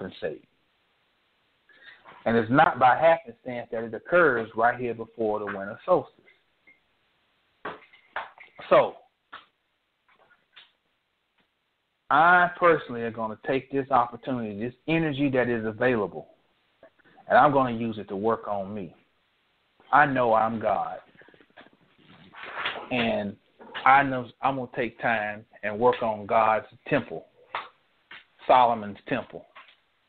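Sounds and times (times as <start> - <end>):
man talking: 0.0 - 0.5, 2.2 - 6.2, 8.6 - 9.1, 12.1 - 16.3, 17.2 - 19.0, 19.9 - 21.2, 22.9 - 27.7, 28.4 - 29.6.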